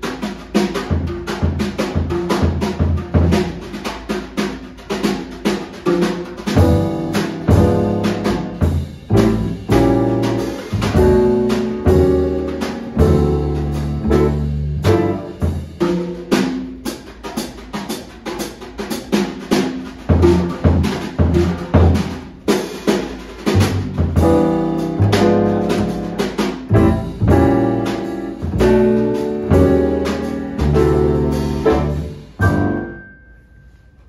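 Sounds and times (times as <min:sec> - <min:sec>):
drum kit playing jazz: 0:00.0 - 0:33.8
plucked double bass: 0:06.5 - 0:16.3, 0:23.4 - 0:32.9.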